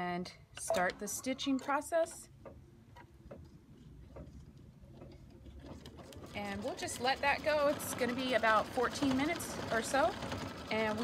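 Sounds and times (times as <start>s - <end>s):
embroidery machine stitching: 4.9s - 11.0s.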